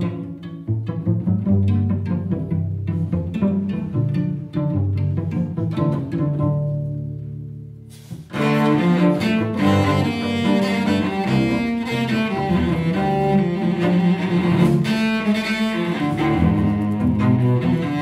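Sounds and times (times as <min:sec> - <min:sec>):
cellos playing a tango: 0:00.0 - 0:18.0.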